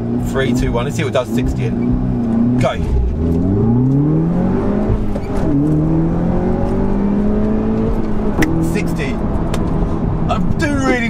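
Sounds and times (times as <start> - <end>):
car engine at full throttle: 0.0 - 11.0.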